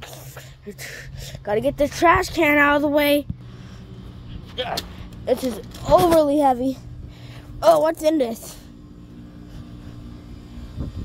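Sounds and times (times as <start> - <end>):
low mechanical hum: 0.0 - 11.0
low outdoor rumble: 0.0 - 11.0.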